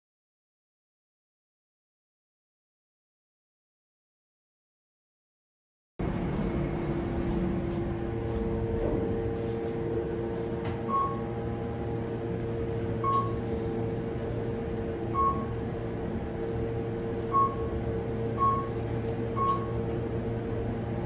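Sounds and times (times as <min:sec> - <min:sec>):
elevator car humming: 0:06.0 - 0:21.0
short single-pitch beeps: 0:10.9 - 0:11.3, 0:13.0 - 0:13.4, 0:15.1 - 0:15.6, 0:17.2 - 0:17.7, 0:18.4 - 0:18.8, 0:19.4 - 0:19.8.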